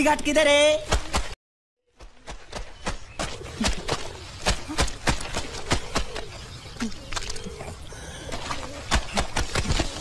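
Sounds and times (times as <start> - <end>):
wet laundry slapping: 2.2 - 7.5, 8.3 - 10.0
bird cooing: 3.2 - 10.0.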